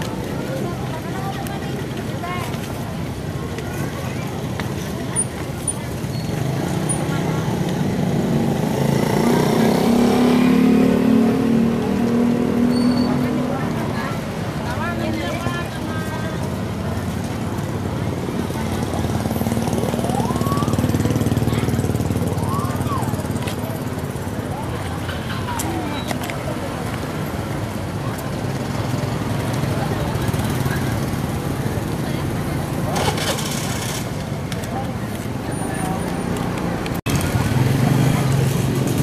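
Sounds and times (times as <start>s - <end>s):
people talking: 0.0s - 39.0s
small motorcycle engines passing: 0.0s - 39.0s.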